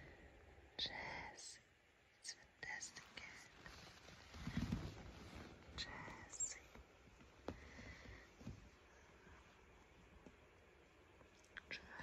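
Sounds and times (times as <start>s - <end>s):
close whispering: 0.8s - 1.6s, 2.2s - 3.8s, 5.8s - 6.8s, 11.5s - 12.0s
soft clicks and rustles: 2.8s - 12.0s
low rub on microphone: 2.9s - 6.8s.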